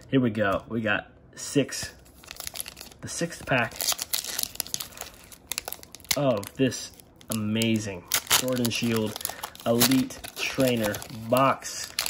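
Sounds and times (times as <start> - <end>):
foil wrapper crinkling and tearing: 2.0 - 12.0.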